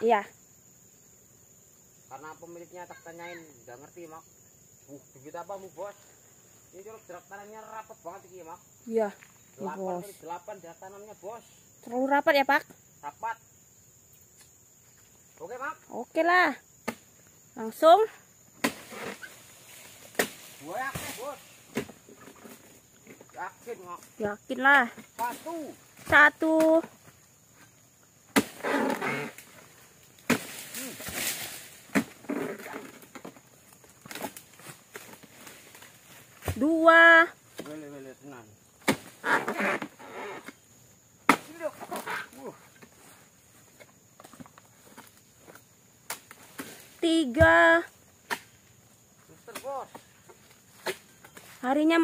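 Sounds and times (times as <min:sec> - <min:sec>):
chisel knocks into palm frond: 0:18.6 - 0:19.3, 0:20.1 - 0:22.0, 0:28.3 - 0:28.6, 0:30.2 - 0:32.7, 0:38.8 - 0:39.9
chisel chopping into palm stalks: 0:18.6 - 0:22.6, 0:28.3 - 0:29.5, 0:30.2 - 0:33.3, 0:34.0 - 0:35.6, 0:38.8 - 0:39.9, 0:41.2 - 0:42.2, 0:48.2 - 0:48.6, 0:50.7 - 0:51.5.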